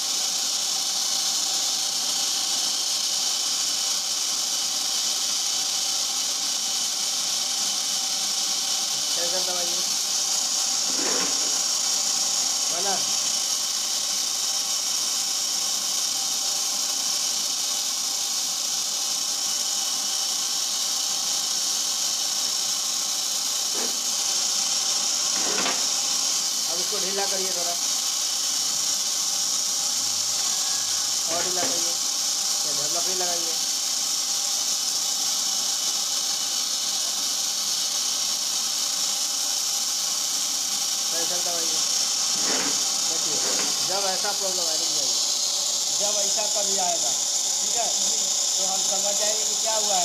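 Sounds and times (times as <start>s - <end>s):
high-pitched machine hiss: 0.0s - 50.0s.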